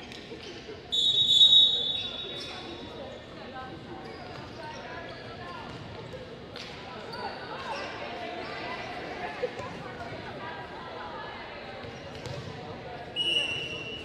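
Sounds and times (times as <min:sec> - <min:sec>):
voices in gym: 0:00.0 - 0:14.0
referee's whistle blast: 0:01.0 - 0:02.3.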